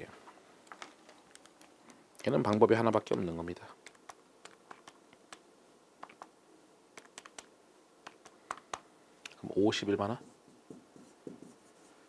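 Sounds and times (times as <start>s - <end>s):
pen writing on board: 10.7s - 11.7s.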